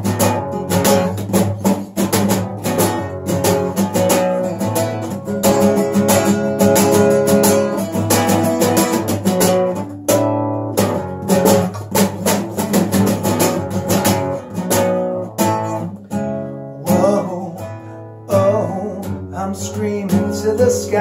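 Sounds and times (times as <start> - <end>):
classical guitar strummed: 0.0 - 21.0.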